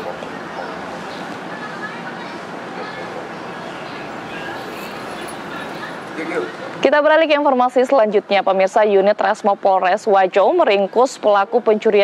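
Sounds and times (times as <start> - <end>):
steady street background noise: 0.0 - 12.0
distant high-pitched calls: 2.8 - 6.2.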